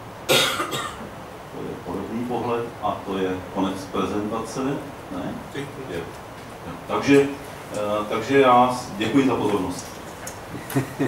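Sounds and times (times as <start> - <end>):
person coughing: 0.3 - 1.1.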